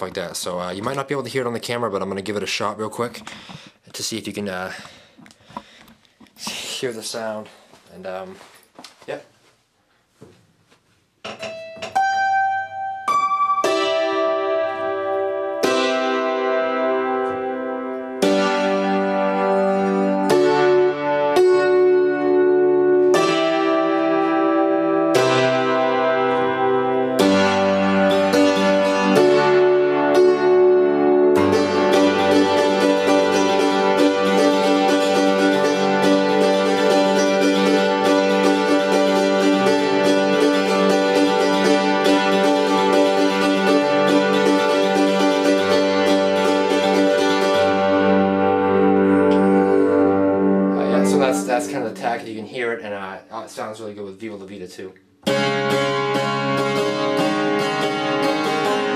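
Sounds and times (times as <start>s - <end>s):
tack piano playing: 11.3s - 54.4s, 55.2s - 58.9s.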